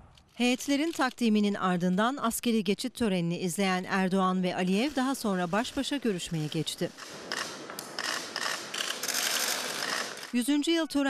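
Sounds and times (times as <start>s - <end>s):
camera shutters clicking: 7.0s - 10.3s.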